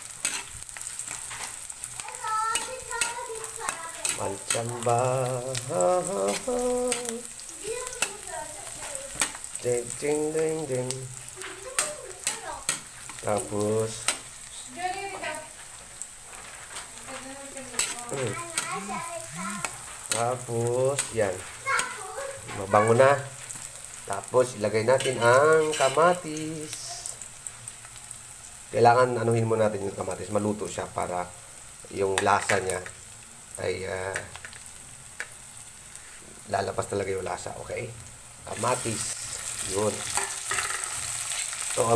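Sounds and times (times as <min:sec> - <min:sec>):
metal spatula scraping a pan: 0:00.0 - 0:01.8, 0:02.5 - 0:07.1, 0:17.6 - 0:18.9, 0:24.6 - 0:26.3, 0:38.6 - 0:41.7
onion sizzling in oil: 0:00.0 - 0:41.9.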